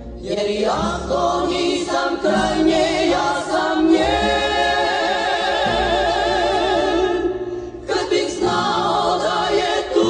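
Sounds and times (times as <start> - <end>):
vocal ensemble singing: 0.0 - 10.0.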